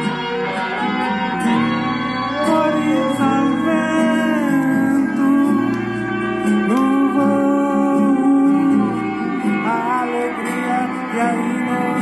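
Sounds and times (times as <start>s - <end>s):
guitar accompaniment: 0.0s - 12.0s
person singing long sliding notes: 0.9s - 12.0s.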